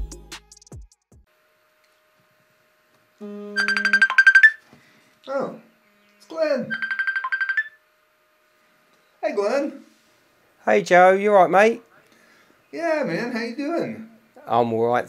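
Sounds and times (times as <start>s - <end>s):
short low tone: 3.2s - 4.2s
telephone trilling rings: 3.6s - 4.6s, 6.7s - 7.8s.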